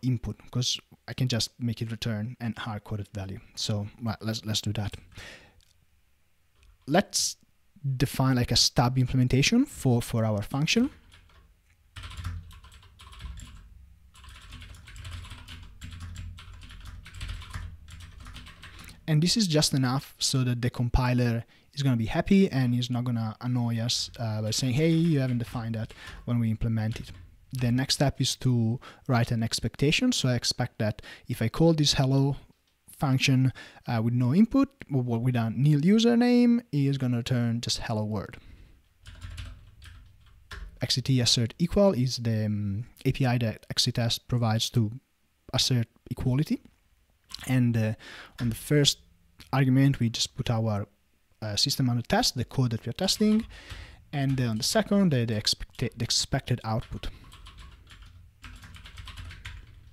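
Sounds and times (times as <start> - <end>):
computer keyboard typing: 10.9 - 19.0, 24.5 - 26.3, 26.9 - 27.3, 39.0 - 40.8, 53.0 - 53.5, 56.8 - 59.9.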